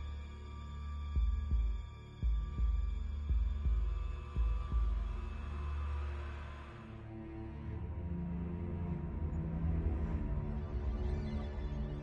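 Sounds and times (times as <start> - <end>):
low droning suspense music: 0.0 - 12.0
heartbeat thumps: 1.2 - 5.2.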